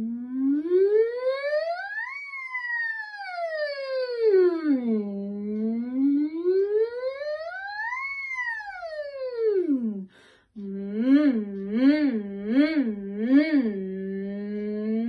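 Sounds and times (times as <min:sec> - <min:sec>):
woman humming vocal siren: 0:00.0 - 0:15.0.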